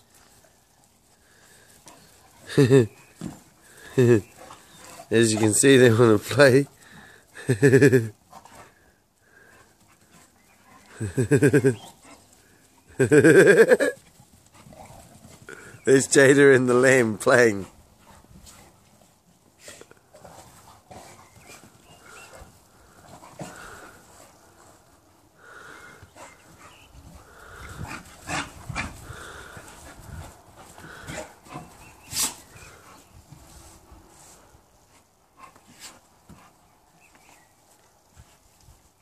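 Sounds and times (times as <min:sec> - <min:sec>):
dogs breathing and play-fighting: 0:00.0 - 0:13.1, 0:14.0 - 0:39.0.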